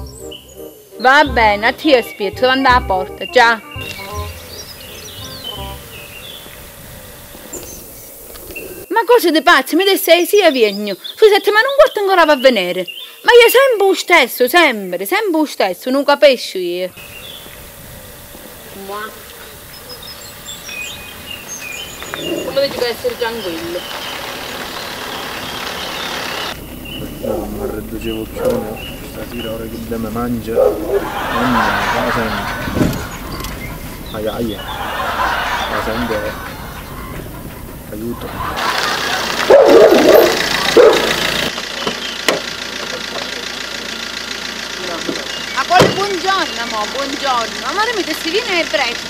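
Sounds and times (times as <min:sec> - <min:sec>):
car engine idling: 0:00.0 - 0:08.8, 0:16.9 - 0:49.0
birds chirping: 0:00.0 - 0:49.0
dog barking: 0:27.0 - 0:28.9, 0:30.4 - 0:32.0, 0:39.0 - 0:41.2
car door opening click: 0:28.4 - 0:29.2, 0:32.7 - 0:33.7.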